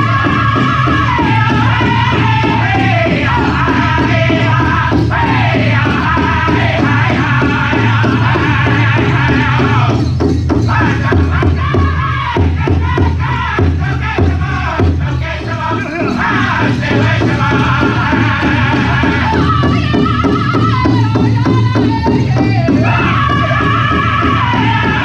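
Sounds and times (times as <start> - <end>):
group singing in high voices: 0.0 - 25.0
large drum steady beat: 0.0 - 25.0.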